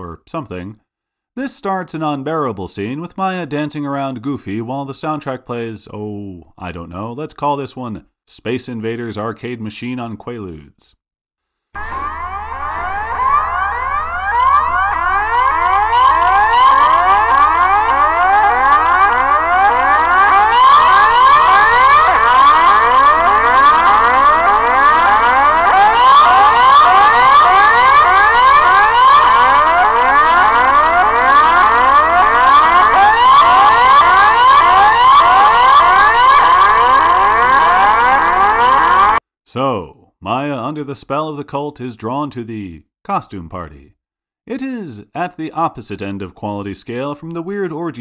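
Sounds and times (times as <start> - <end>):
short rising electronic sweeps: 11.8 - 19.1
low hum: 11.8 - 25.8
steady high tone: 11.8 - 39.2.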